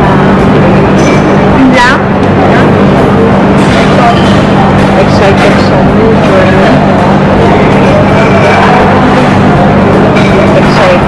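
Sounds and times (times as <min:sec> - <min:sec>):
restaurant crowd chatter: 0:00.0 - 0:11.0
steady low hum: 0:00.0 - 0:11.0.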